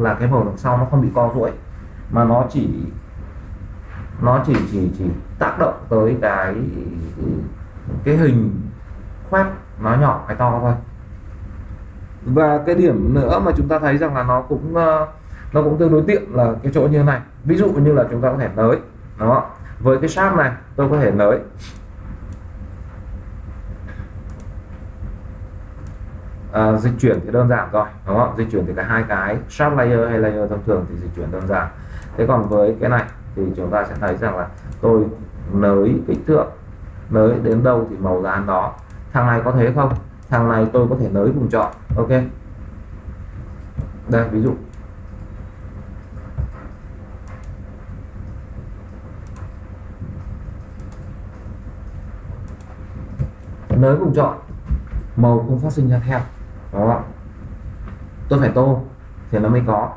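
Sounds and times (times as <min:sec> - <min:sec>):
faint steady hum: 0:00.0 - 0:59.9
low background rumble: 0:00.0 - 0:59.9
computer mouse clicks: 0:23.9 - 0:24.6, 0:31.4 - 0:33.2, 0:33.9 - 0:34.9, 0:46.0 - 0:47.6, 0:49.2 - 0:49.6, 0:50.6 - 0:51.1, 0:52.4 - 0:53.8
mouse clicks: 0:49.2 - 0:49.6, 0:50.7 - 0:51.1.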